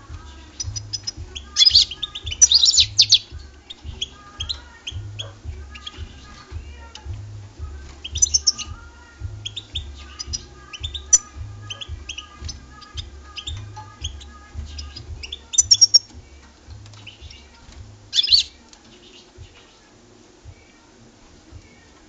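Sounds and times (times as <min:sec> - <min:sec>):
bird twittering and chirping: 0:00.0 - 0:20.9
low pulsing hum: 0:00.0 - 0:21.9.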